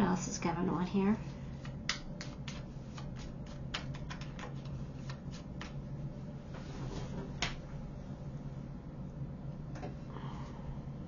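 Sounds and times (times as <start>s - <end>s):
cards being shuffled: 1.6s - 5.8s.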